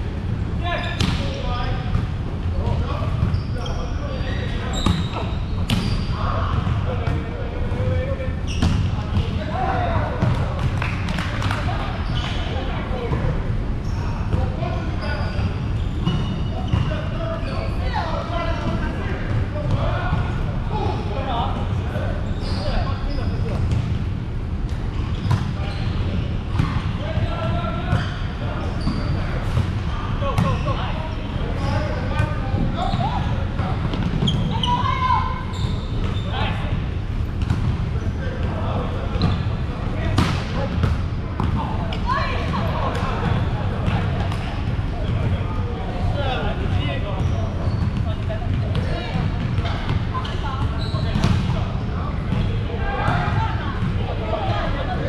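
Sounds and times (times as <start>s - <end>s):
players' scattered voices: 0.0s - 55.0s.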